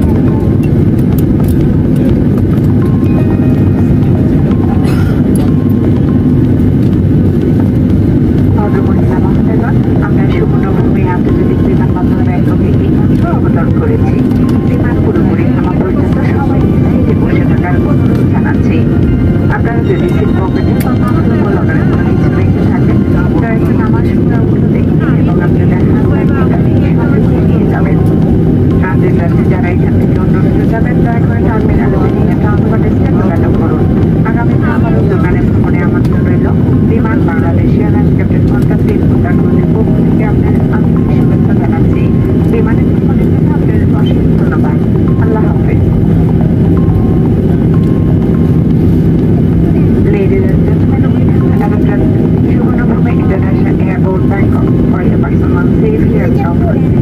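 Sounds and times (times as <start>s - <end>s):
jet engines humming: 0.0s - 57.0s
murmur of passengers' voices: 0.0s - 57.0s.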